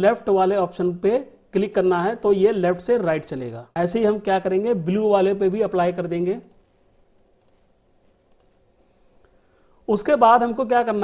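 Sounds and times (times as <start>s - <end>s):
person speaking: 0.0s - 6.7s, 9.8s - 11.0s
computer mouse clicks: 6.4s - 6.7s, 7.4s - 7.7s, 8.3s - 8.6s.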